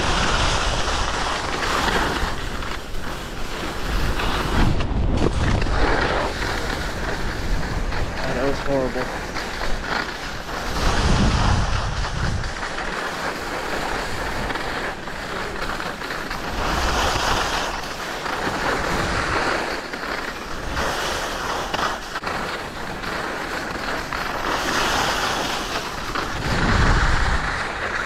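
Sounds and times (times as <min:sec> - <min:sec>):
wind on microphone: 0:00.0 - 0:19.5, 0:24.0 - 0:28.0
skis scraping over snow: 0:00.0 - 0:28.0.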